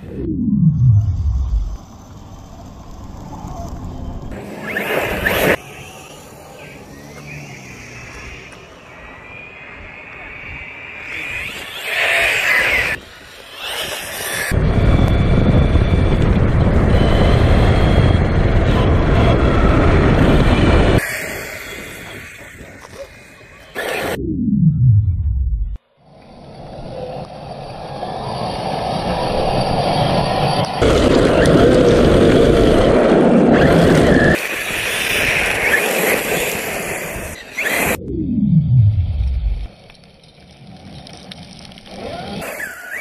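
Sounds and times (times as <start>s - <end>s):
electric motor whining: 3.9s - 24.2s.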